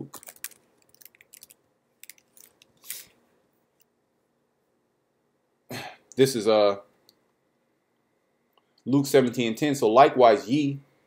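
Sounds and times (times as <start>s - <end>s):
man coughing: 5.7s - 6.0s.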